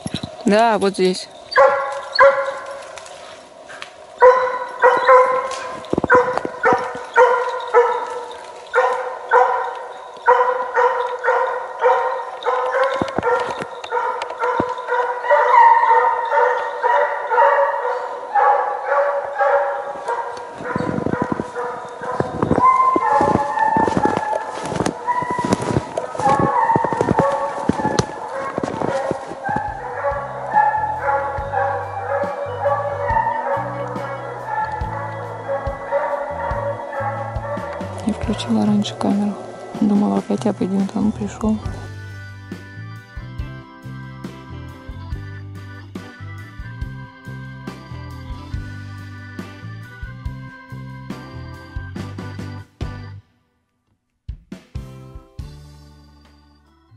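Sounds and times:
hounds baying: 0:00.0 - 0:42.0.

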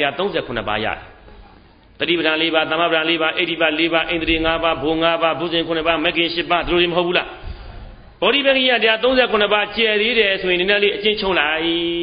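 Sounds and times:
man preaching: 0:00.0 - 0:01.1, 0:02.0 - 0:07.4, 0:08.2 - 0:12.0.

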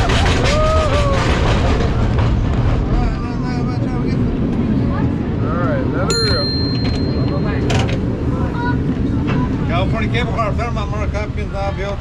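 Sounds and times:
cable car rolling on rails: 0:00.0 - 0:12.0.

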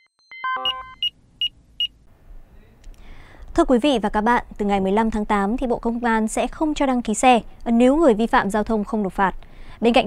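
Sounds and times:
high electronic beeps: 0:00.0 - 0:01.9
faint low background noise: 0:00.7 - 0:10.0.

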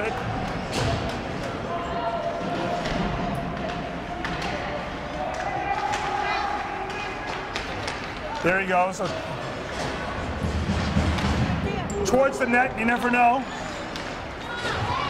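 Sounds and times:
crowd chatter: 0:00.0 - 0:15.0
hockey sticks and puck knocking: 0:06.8 - 0:11.6.

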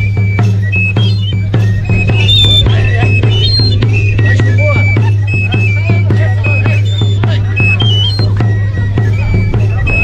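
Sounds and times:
drum beating: 0:00.0 - 0:10.0
high whistle-like pipe melody: 0:00.0 - 0:10.0.

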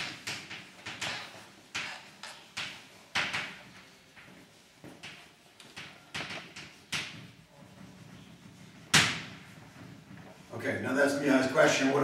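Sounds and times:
chalk stroke on blackboard: 0:00.0 - 0:10.5
chalk tapping blackboard: 0:00.0 - 0:10.5.

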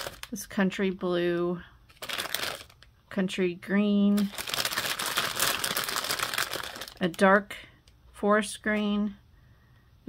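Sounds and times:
plastic bag crinkling: 0:00.0 - 0:00.4, 0:01.9 - 0:02.9, 0:04.1 - 0:07.4.

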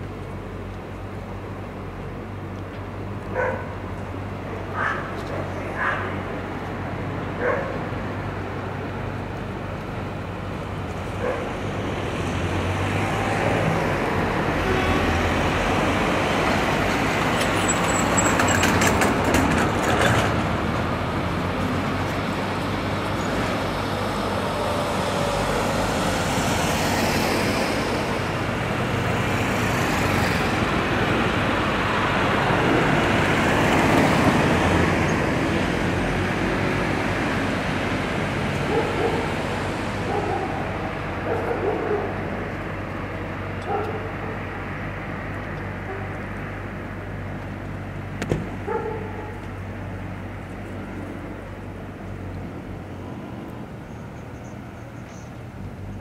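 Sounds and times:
road traffic: 0:00.0 - 0:56.0.

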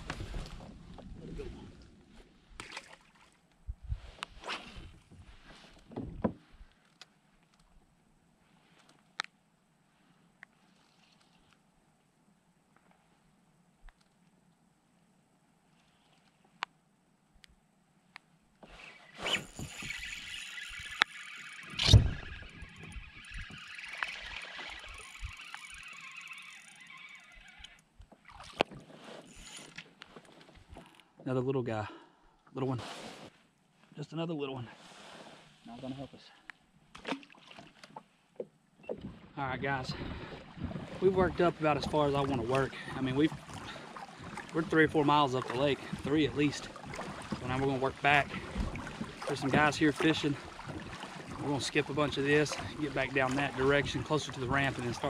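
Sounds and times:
water splashing: 0:02.5 - 0:03.4, 0:19.0 - 0:29.9, 0:36.9 - 0:38.0, 0:38.9 - 0:55.0
loud thump: 0:21.8 - 0:22.4.

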